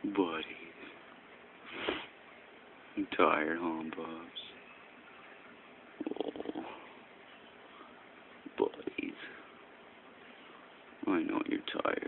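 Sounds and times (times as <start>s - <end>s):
dog vocalizing: 6.0s - 6.8s.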